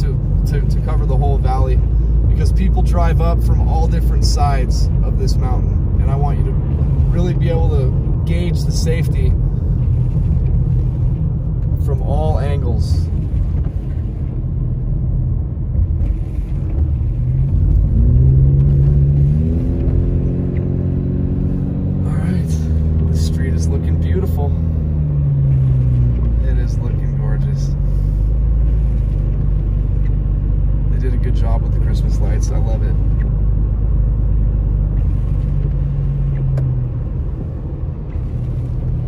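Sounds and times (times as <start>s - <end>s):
car engine: 0.0s - 39.0s
tyres rumbling on wet road: 0.0s - 39.0s.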